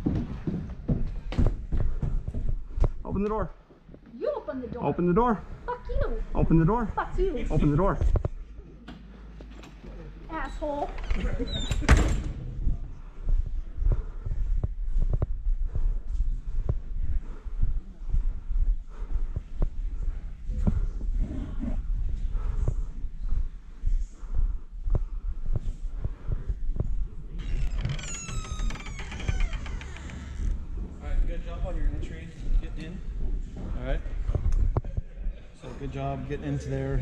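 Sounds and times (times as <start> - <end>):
footsteps: 0.0 - 4.8, 5.4 - 35.1
steady low rumble: 12.2 - 27.6.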